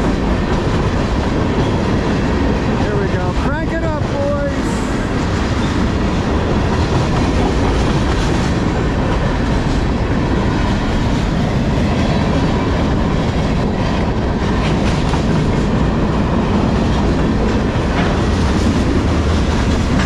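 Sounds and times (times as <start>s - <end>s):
train wheels rumbling on rails: 0.0s - 20.0s.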